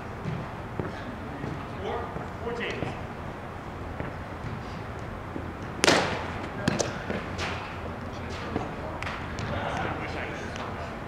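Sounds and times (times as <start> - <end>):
ball smacked by hand: 5.8 - 7.6
ball bouncing off net: 5.8 - 7.7.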